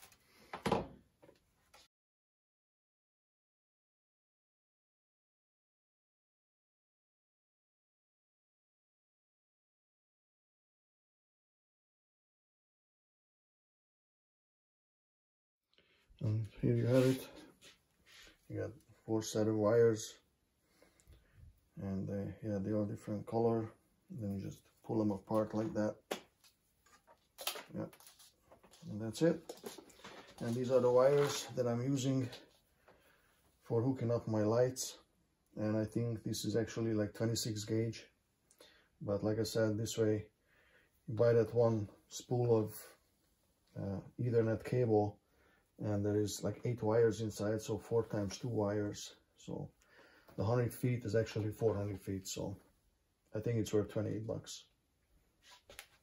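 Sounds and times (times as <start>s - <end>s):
wires sliding out of cable jacket: 29.5s - 31.6s.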